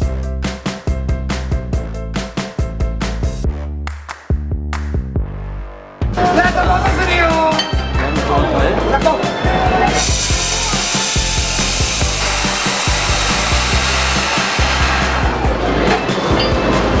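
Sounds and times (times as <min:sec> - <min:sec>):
background music: 0:00.0 - 0:17.0
steam hissing: 0:09.9 - 0:15.4.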